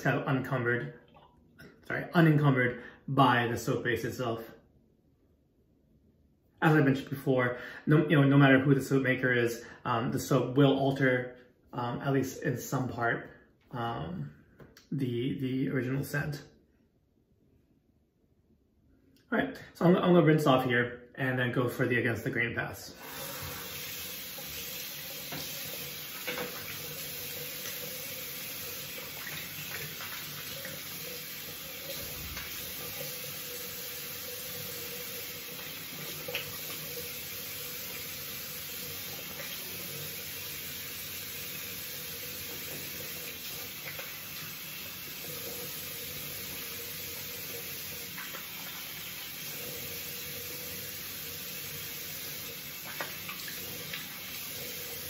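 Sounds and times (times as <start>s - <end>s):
tap running into sink: 23.0s - 27.9s, 31.6s - 33.2s
water splashing on face: 23.0s - 33.6s, 52.6s - 54.7s.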